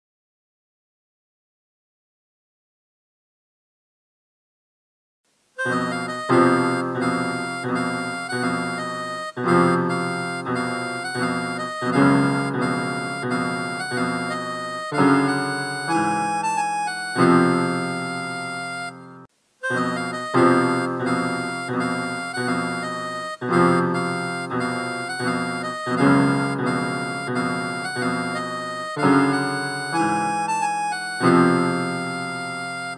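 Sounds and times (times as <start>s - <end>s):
electronic keyboard chords: 5.6s - 32.9s
harmonica melody: 5.6s - 32.9s.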